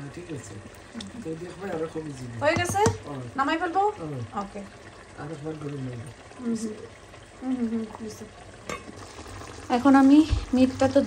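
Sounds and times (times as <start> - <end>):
masala frying in oil: 0.0 - 11.0
woman speaking: 9.7 - 11.0.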